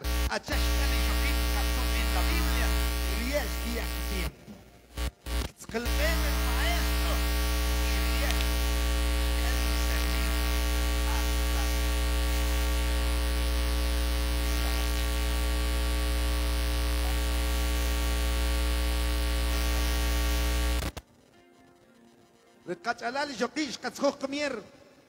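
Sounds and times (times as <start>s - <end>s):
electrical mains hum and buzz: 0.0s - 4.3s, 4.9s - 21.0s.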